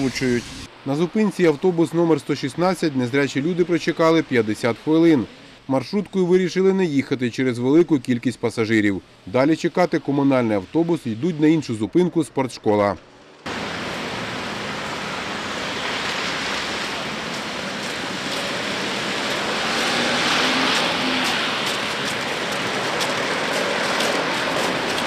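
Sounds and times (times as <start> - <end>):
bus road and engine noise: 0.0 - 0.9, 1.7 - 5.7, 13.0 - 25.0.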